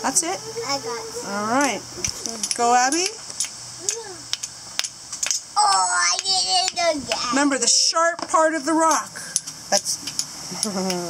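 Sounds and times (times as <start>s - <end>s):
child's voice: 0.4s - 1.4s, 3.8s - 4.3s, 5.6s - 7.5s
steel striking flint clicks: 4.3s - 5.4s.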